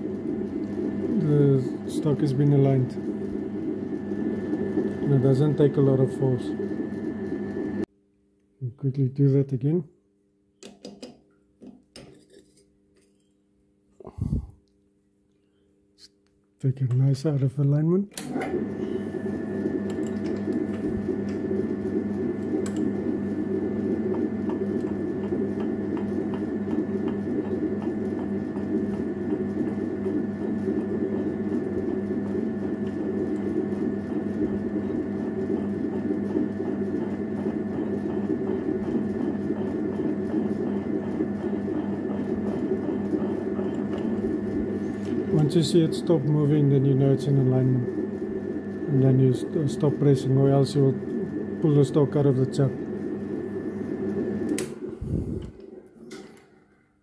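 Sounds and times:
metal lathe running: 0.0 - 7.8, 18.2 - 54.9.

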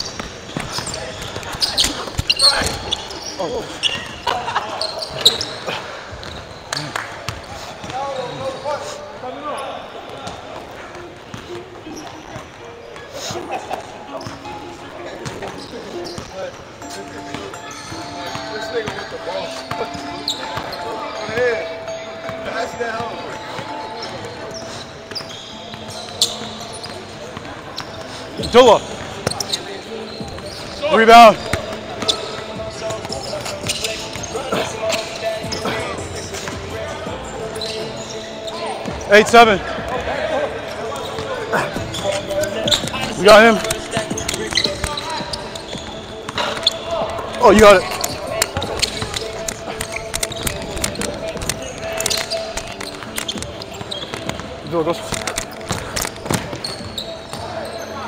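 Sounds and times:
sneakers squeaking on court: 0.0 - 58.0
basketballs bouncing on wooden floor: 41.0 - 57.4.

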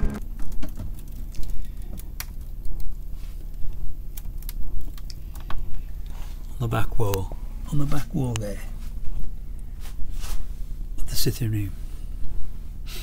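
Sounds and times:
low rumble: 0.0 - 0.2.

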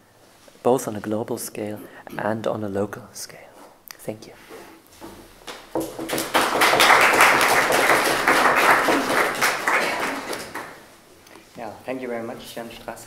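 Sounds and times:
audience applauding: 5.5 - 10.8.

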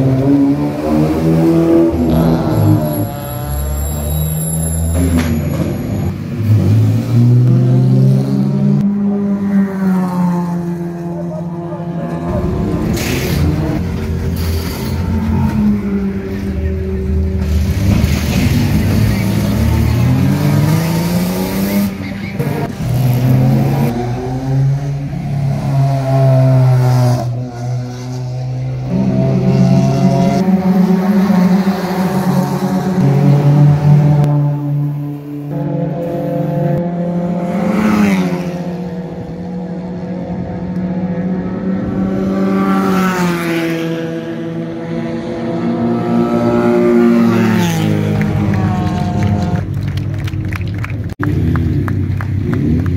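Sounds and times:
race car engines revving: 0.0 - 52.9.

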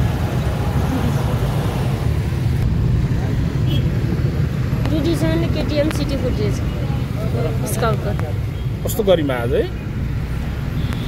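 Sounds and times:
road noise: 0.0 - 11.0
vehicle engine rumble: 0.0 - 11.0.

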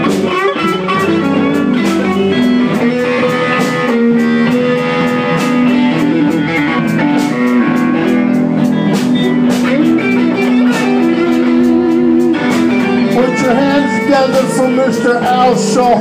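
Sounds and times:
drums keeping a steady beat: 0.0 - 16.0
electric guitar bending notes: 0.0 - 16.0.

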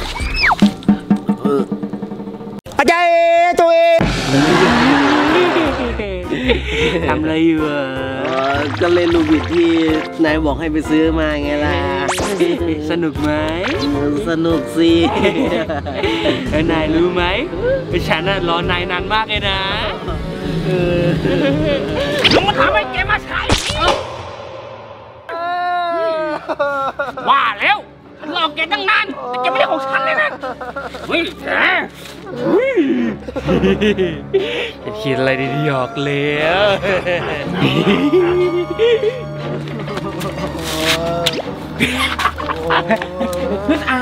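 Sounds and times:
background music: 0.0 - 44.0
man laughing: 4.6 - 7.2, 15.0 - 16.5, 20.0 - 22.2, 25.3 - 27.4, 29.1 - 31.2, 32.5 - 34.5, 36.4 - 44.0
person crying out wordlessly: 25.3 - 26.5, 34.9 - 36.5, 37.7 - 39.8.

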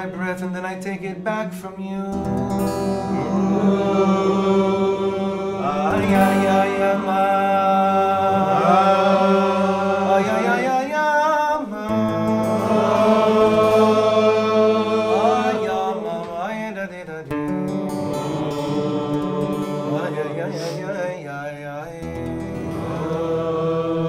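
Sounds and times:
acoustic guitar: 0.0 - 24.0
voices singing wordless melody: 0.0 - 24.0.

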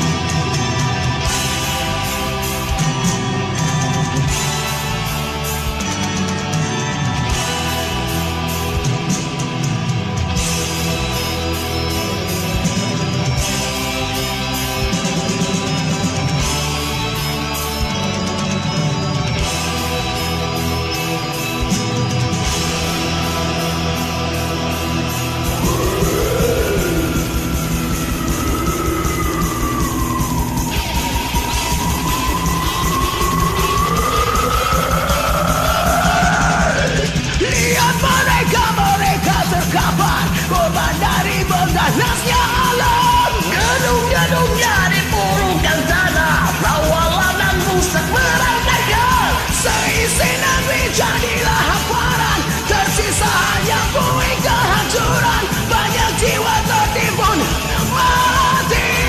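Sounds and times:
heavy metal backing track: 0.0 - 59.0
man yelling singing: 34.2 - 59.0.

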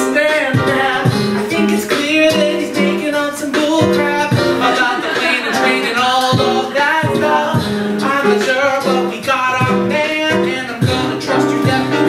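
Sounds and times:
live instrumental accompaniment: 0.0 - 12.0
man singing: 0.0 - 12.0.

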